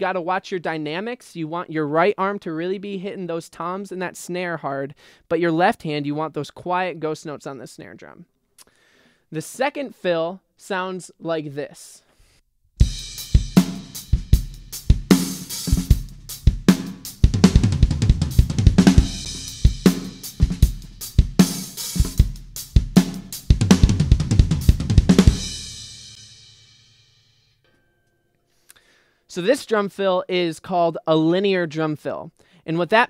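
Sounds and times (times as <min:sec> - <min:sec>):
fast drum fill: 0:12.8 - 0:26.4.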